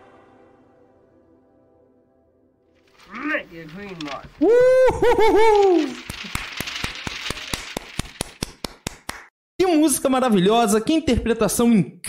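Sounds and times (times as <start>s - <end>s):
man's drawn-out vocal cry: 4.4s - 6.0s
hand clapping: 5.8s - 9.3s.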